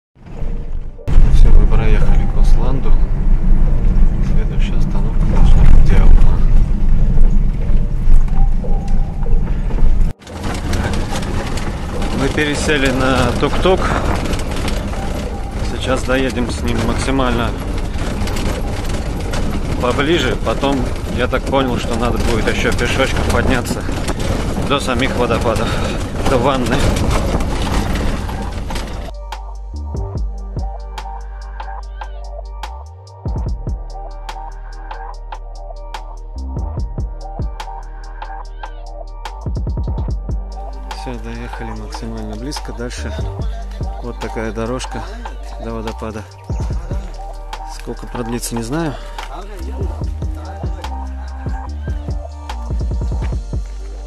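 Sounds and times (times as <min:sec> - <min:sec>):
car engine and tyres rumbling: 0:00.2 - 0:54.0
road noise: 0:00.2 - 0:54.0
indistinct voices: 0:01.0 - 0:29.3, 0:40.1 - 0:54.0
rattles and clicks from body: 0:05.2 - 0:29.2, 0:39.3 - 0:54.0
lighter rumble inside tuk-tuk: 0:09.6 - 0:54.0.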